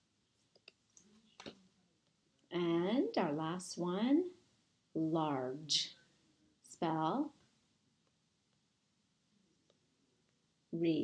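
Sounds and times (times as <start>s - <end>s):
faint clicks of paper cards: 0.4s - 2.5s.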